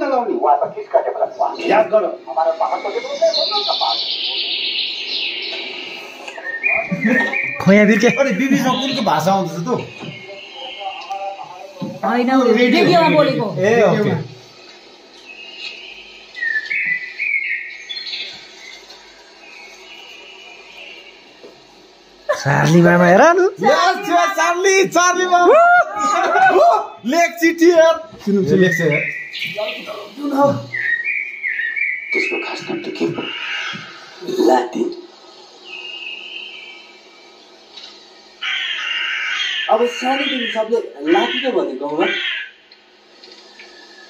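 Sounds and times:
high-pitched whistling: 0:02.6 - 0:11.7, 0:15.6 - 0:18.8, 0:28.3 - 0:33.9, 0:35.6 - 0:37.4
harsh crow-like calls: 0:32.6 - 0:34.3, 0:38.3 - 0:42.7.

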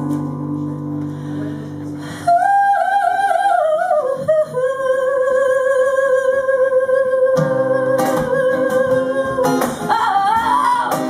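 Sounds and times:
acoustic guitar strummed: 0:00.0 - 0:02.0, 0:07.3 - 0:11.0.

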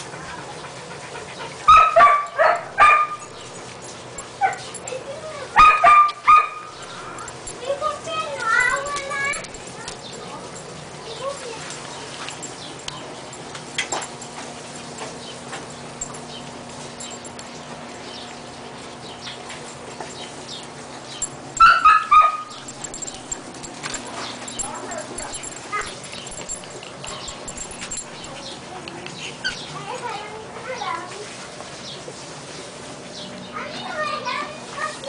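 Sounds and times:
puppies whimpering and yipping: 0:00.0 - 0:11.7, 0:19.7 - 0:30.1
high-pitched puppy yelps: 0:21.6 - 0:22.6.

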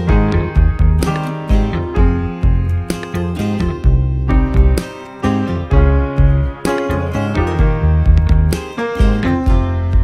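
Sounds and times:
low bass line: 0:00.0 - 0:10.0
plucked notes: 0:00.0 - 0:10.0.

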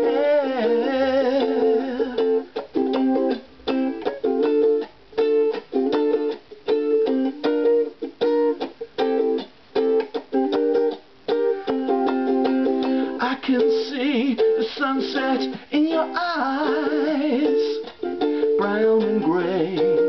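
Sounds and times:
ukulele strummed reggae style: 0:00.0 - 0:20.0.

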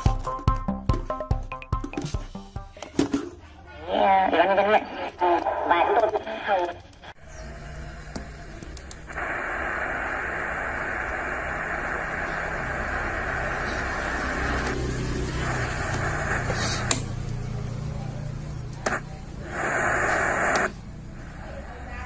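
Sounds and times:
radio static hiss: 0:03.9 - 0:17.2, 0:18.7 - 0:22.0.

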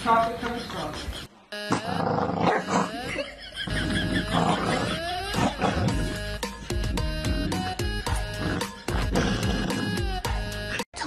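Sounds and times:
dog growling: 0:01.7 - 0:10.2.

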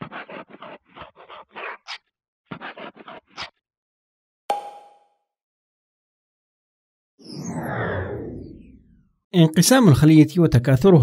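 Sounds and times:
marker scratching on whiteboard: 0:00.0 - 0:03.6
marker squeak: 0:00.0 - 0:03.6.

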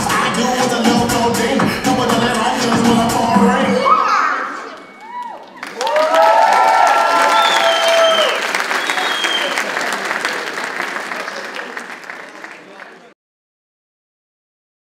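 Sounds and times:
audience shouts and whoops: 0:03.7 - 0:09.4
audience clapping: 0:05.0 - 0:13.2.

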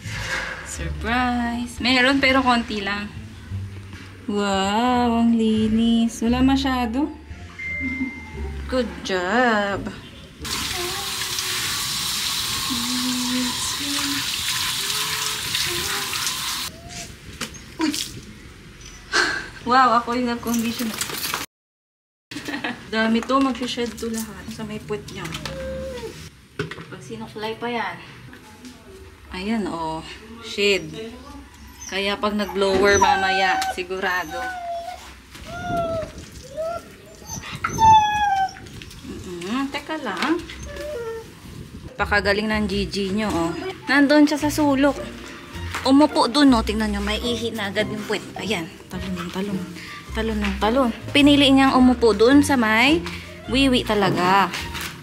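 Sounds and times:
dog whining: 0:07.7 - 0:09.1, 0:14.8 - 0:17.7, 0:25.4 - 0:26.3, 0:30.7 - 0:38.8, 0:40.4 - 0:41.4, 0:43.3 - 0:44.3
shower head spraying water: 0:10.5 - 0:16.7.

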